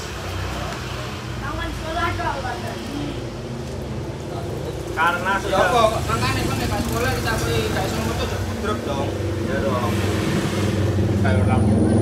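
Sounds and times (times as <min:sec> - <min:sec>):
people talking: 0:11.1 - 0:12.0.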